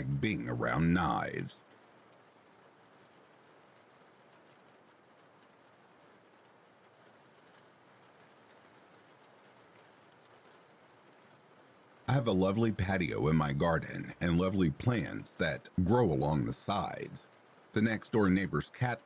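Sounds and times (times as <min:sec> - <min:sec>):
faint steady rain hiss: 0:00.0 - 0:19.0.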